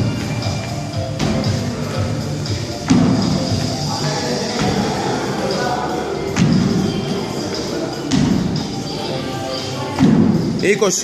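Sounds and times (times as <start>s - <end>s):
background music: 0.0s - 11.0s
heavy thump on rubber floor: 1.2s - 1.7s, 2.8s - 3.6s, 10.0s - 10.4s.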